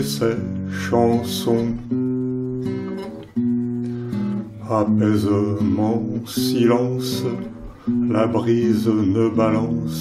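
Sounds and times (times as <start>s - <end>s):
person singing: 0.0s - 2.7s, 4.5s - 10.0s
acoustic guitar chords strummed: 0.0s - 10.0s.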